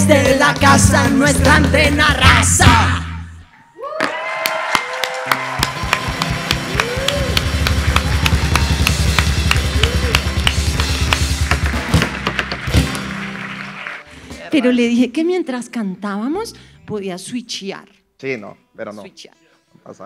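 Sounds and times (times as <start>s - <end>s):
drum kit: 0.0s - 3.2s, 5.3s - 14.7s
live band groove: 0.0s - 3.3s, 5.4s - 15.0s
bass guitar: 0.0s - 3.5s, 5.4s - 15.0s.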